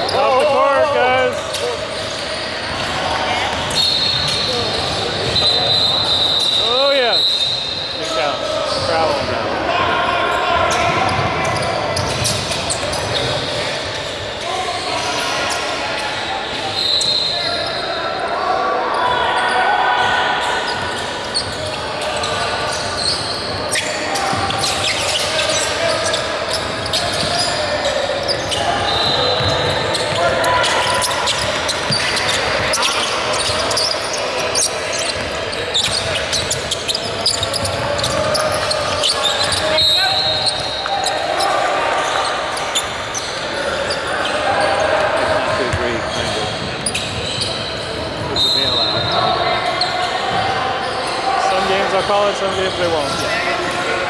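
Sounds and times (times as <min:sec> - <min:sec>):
players and spectators calling out: 0:00.0 - 0:54.0.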